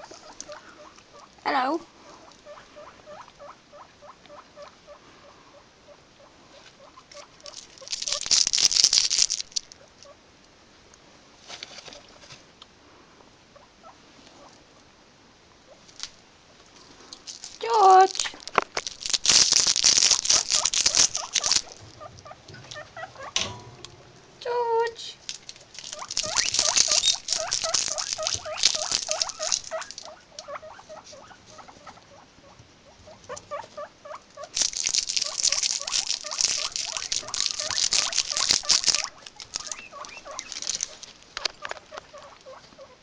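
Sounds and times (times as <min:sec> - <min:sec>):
guinea pig squeals: 0:00.0 - 0:01.3, 0:02.4 - 0:08.2, 0:25.9 - 0:34.5, 0:35.2 - 0:41.0
rapid guinea pig squeaks: 0:00.0 - 0:01.3, 0:02.4 - 0:08.6, 0:19.0 - 0:23.6, 0:25.8 - 0:43.0
guinea pigs rustling in hay: 0:06.5 - 0:09.9, 0:15.7 - 0:23.7, 0:24.8 - 0:43.0.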